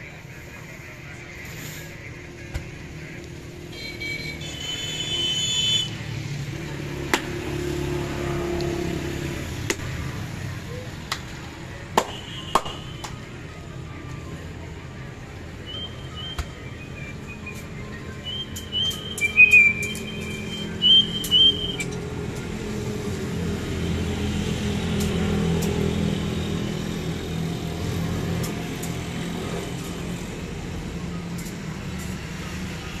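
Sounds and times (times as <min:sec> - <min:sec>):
high chirping whistles: 0:15.6 - 0:21.9.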